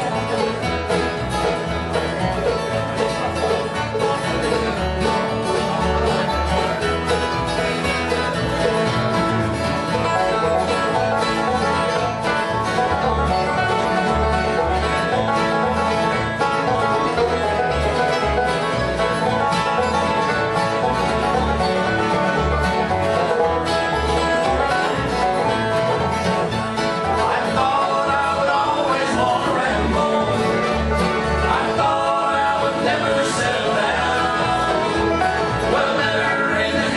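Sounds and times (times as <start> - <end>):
banjo picking fast lead: 0.0 - 36.9
strummed acoustic guitar: 0.0 - 36.9
upright bass notes: 0.0 - 36.9.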